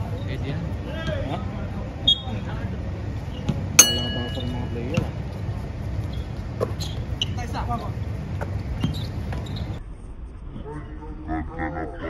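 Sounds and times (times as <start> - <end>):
sharp metallic clang: 3.8 - 5.1
voices: 3.8 - 5.2.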